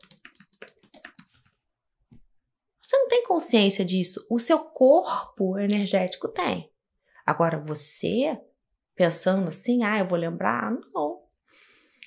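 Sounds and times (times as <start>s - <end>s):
computer keyboard typing: 0.0s - 1.6s.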